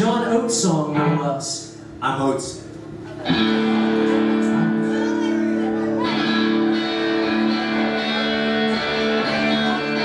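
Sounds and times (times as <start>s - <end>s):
live band playing: 3.1s - 10.0s
electric guitar chord ringing: 3.3s - 10.0s.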